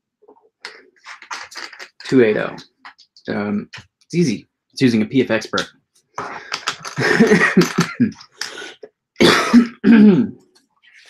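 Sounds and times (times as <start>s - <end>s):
man clearing throat: 6.2s - 10.4s
man coughing: 6.2s - 10.4s.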